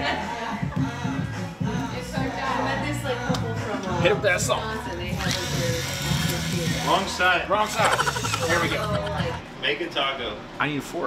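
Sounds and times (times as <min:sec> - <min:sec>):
electric pepper grinder whirring: 0:05.2 - 0:07.1, 0:07.8 - 0:08.9.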